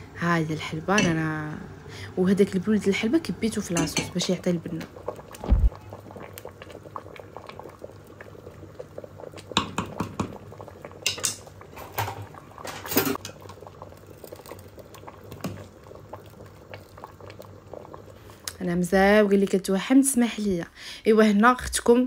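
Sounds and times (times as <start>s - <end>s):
sauce bubbling in a pot: 0.0s - 19.8s
utensils knocking on metal pot: 0.9s - 1.2s, 3.8s - 4.2s, 9.6s - 10.4s.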